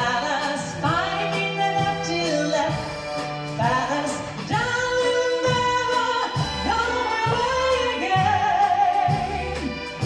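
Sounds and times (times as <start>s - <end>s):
orchestra playing: 0.0s - 10.0s.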